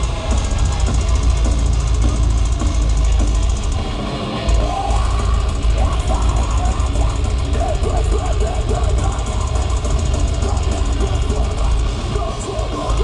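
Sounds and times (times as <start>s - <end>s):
distorted electric guitars: 0.0s - 13.0s
fast drumming: 0.0s - 13.0s.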